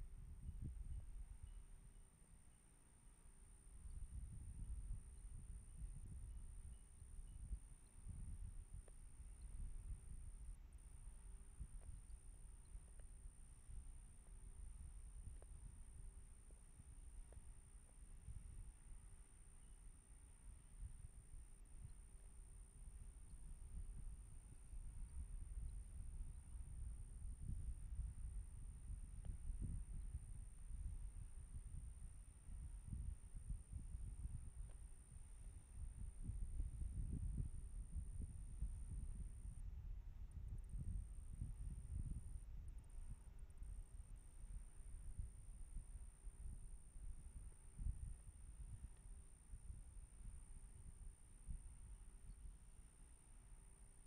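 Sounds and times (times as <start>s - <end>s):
low rumble in gusts: 0.0s - 1.4s, 20.5s - 52.0s.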